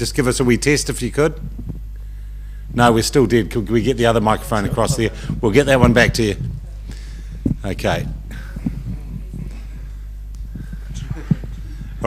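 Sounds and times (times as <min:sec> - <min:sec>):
low electrical hum: 0:00.0 - 0:12.0
faint murmuring voices: 0:08.1 - 0:12.0.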